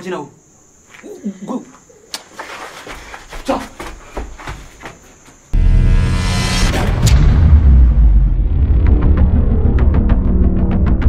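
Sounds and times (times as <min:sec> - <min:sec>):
low rumble: 0:05.6 - 0:11.0.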